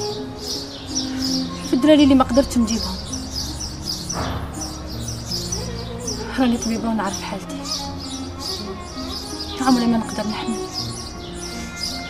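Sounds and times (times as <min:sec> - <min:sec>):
small birds chirping: 0:00.0 - 0:12.0
soft background music: 0:00.0 - 0:12.0.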